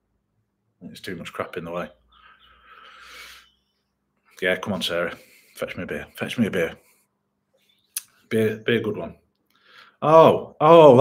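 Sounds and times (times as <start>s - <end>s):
soft breathy exhale: 2.2s - 3.6s.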